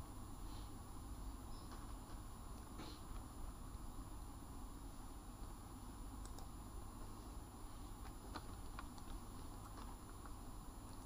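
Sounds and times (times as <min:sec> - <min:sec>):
soft clicks: 0:06.2 - 0:06.5.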